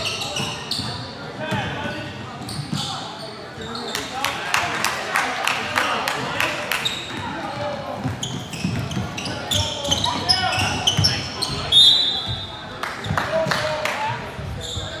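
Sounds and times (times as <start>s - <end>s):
sneakers squeaking on hardwood floor: 0.0s - 4.2s, 6.7s - 13.2s, 14.4s - 15.0s.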